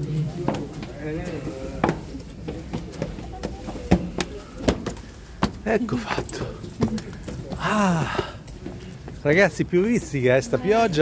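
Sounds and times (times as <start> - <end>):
indistinct voices: 0.0 - 8.8
footsteps on stone stairs: 0.0 - 10.1.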